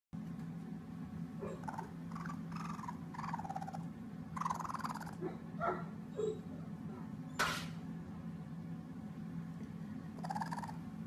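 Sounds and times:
steady low hum: 0.2s - 11.0s
baby raccoon whimpering: 1.4s - 5.5s, 10.2s - 10.9s.

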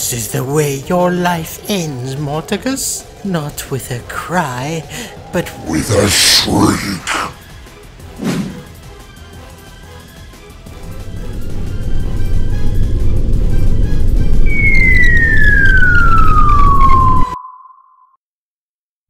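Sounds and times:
loud low rumble: 10.8s - 17.4s
cartoon falling whistle: 14.4s - 18.2s.

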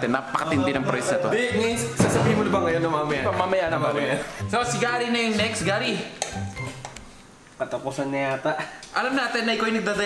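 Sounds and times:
man's voice: 0.0s - 6.1s.

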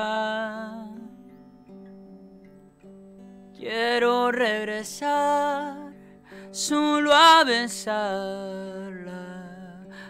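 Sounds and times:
person singing: 0.0s - 1.4s, 3.6s - 10.0s
acoustic guitar picked softly: 0.0s - 10.0s.

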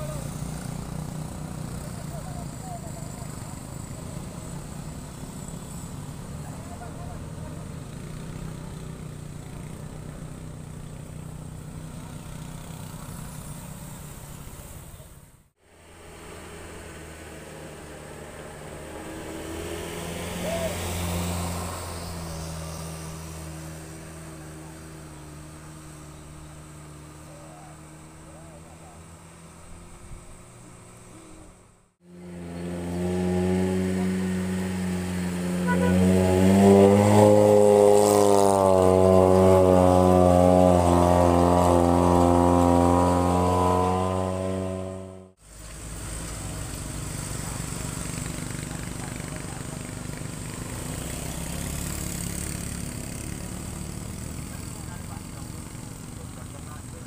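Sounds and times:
truck engine labouring uphill: 0.0s - 57.0s.

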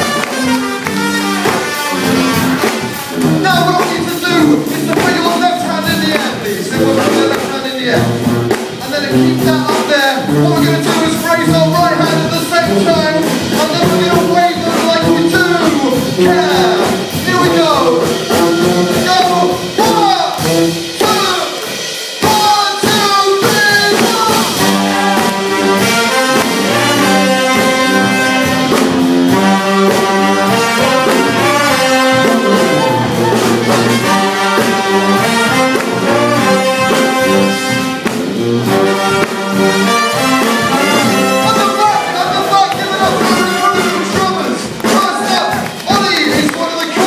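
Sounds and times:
brass band playing loudly: 0.0s - 47.0s.

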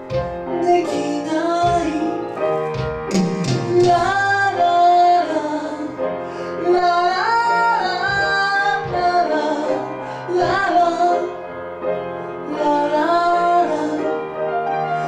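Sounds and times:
electronic keyboard accompaniment: 0.0s - 15.0s
person singing through microphone: 0.6s - 2.4s, 3.3s - 6.0s, 6.6s - 11.4s, 12.5s - 14.2s.

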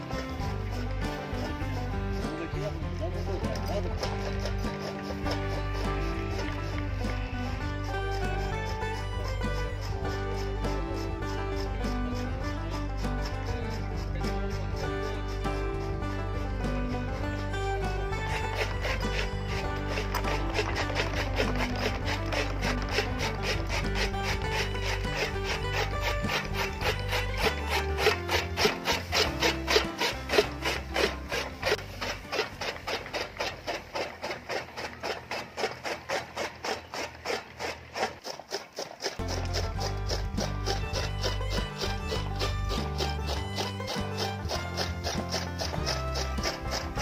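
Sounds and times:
background music: 0.0s - 47.0s
chaff cutter chopping fodder: 0.0s - 47.0s.

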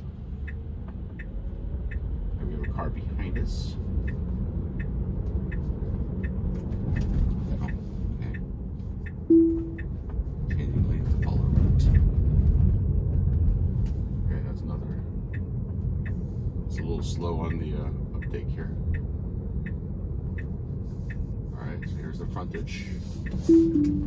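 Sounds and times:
turn signal ticking: 0.0s - 12.4s, 13.8s - 24.0s
road and tyre rumble: 0.0s - 24.0s
short chime: 9.3s - 9.8s, 23.5s - 24.0s.

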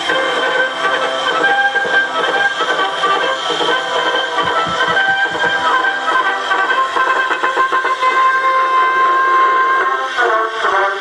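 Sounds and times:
band music from gramophone: 0.0s - 11.0s.

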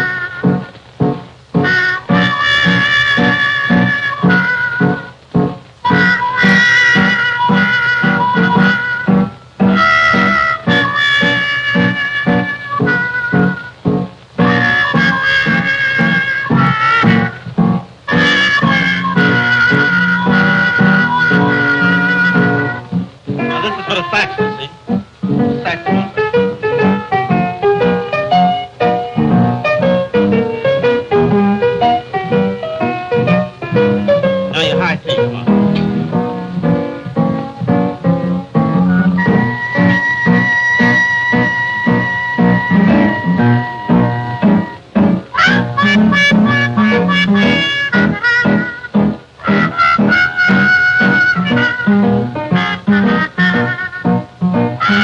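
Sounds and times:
piano chords: 0.0s - 55.0s
trumpet playing jazz melody: 0.0s - 55.0s
trumpet long held note: 1.6s - 5.0s, 5.9s - 13.6s, 14.5s - 17.4s, 18.1s - 22.8s, 49.4s - 54.2s, 54.8s - 55.0s.

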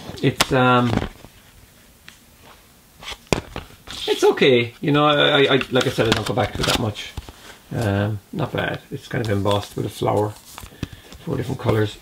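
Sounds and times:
soft rustling: 0.0s - 12.0s.

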